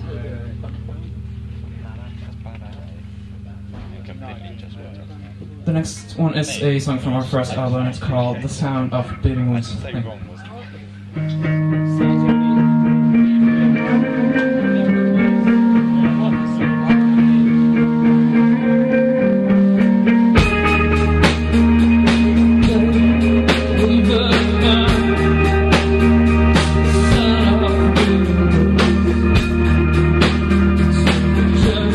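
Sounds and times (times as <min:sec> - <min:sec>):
electric guitar ringing notes: 0:10.6 - 0:31.9
rock band playing: 0:11.1 - 0:31.9.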